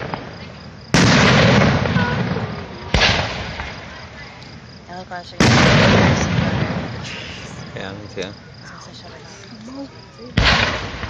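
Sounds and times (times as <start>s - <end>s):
crickets chirping: 0.0s - 11.0s
low rumble of fireworks: 0.0s - 11.0s.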